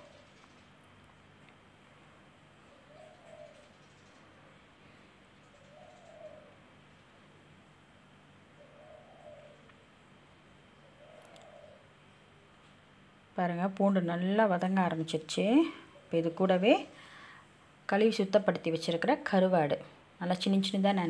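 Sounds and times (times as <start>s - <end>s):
faint bird hoots: 0.0s - 0.7s, 2.7s - 6.7s, 8.5s - 9.8s, 10.7s - 12.0s.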